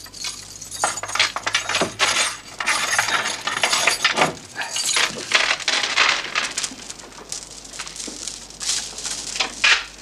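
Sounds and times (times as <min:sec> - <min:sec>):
small hard objects clinking: 0:00.0 - 0:10.0.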